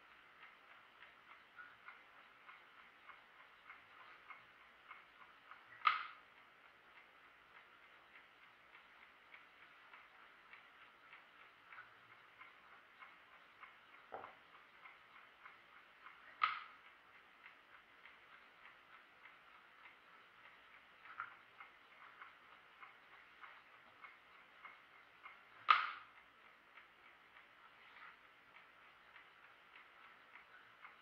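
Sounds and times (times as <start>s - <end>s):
chess clock ticking: 0.0s - 31.0s.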